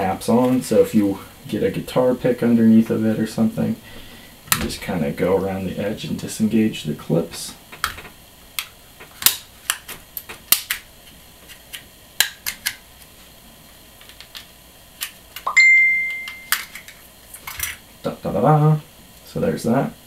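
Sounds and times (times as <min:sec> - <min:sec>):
plastic clicks and snaps: 0:07.7 - 0:10.9, 0:11.5 - 0:12.8
steady high tone: 0:15.5 - 0:16.8.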